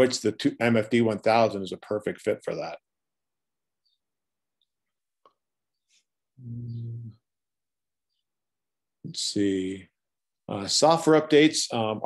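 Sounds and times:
man humming: 0:06.4 - 0:07.3.

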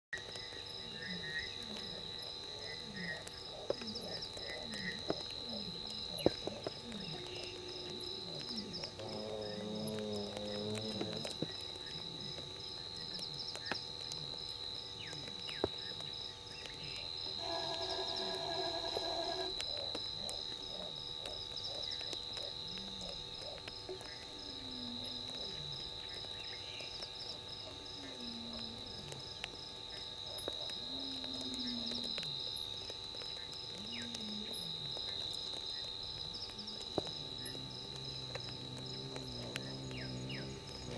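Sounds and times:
high insect trill: 0:00.2 - 0:40.9
low falling frog calls: 0:00.2 - 0:40.9
faint sharp clicks: 0:28.9 - 0:40.9.

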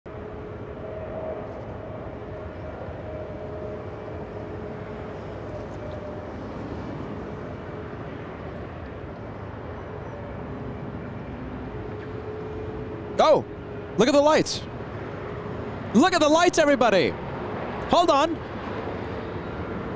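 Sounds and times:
jet engines rumbling: 0:00.1 - 0:19.9.

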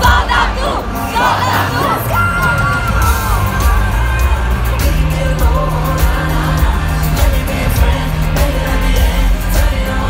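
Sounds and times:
crowd screaming and cheering: 0:00.0 - 0:10.0
live pop band playing: 0:00.0 - 0:10.0.

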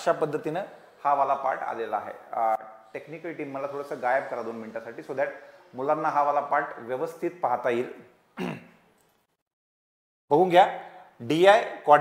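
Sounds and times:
man speaking: 0:00.0 - 0:08.2, 0:10.3 - 0:12.0
man clearing his throat: 0:08.4 - 0:08.8.

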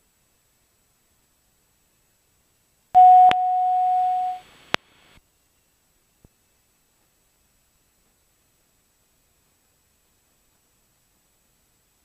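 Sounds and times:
steady electronic beep: 0:03.0 - 0:04.4.

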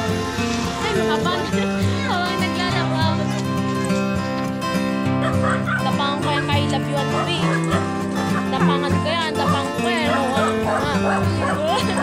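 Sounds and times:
background music: 0:00.0 - 0:12.0
dog yipping and whining: 0:05.2 - 0:05.9, 0:07.2 - 0:08.5.

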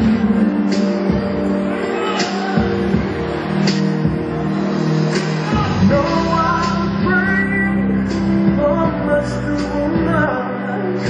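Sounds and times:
instrumental backing track: 0:00.0 - 0:11.0.

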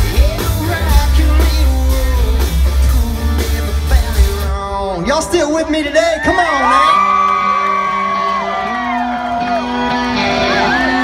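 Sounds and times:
crowd whooping: 0:06.0 - 0:11.0
sustained electric guitar chords: 0:07.2 - 0:11.0.

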